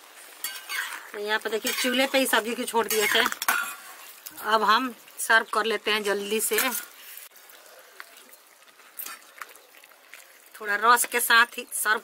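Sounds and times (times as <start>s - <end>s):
gravy dribbling into bowl: 7.3s - 11.8s.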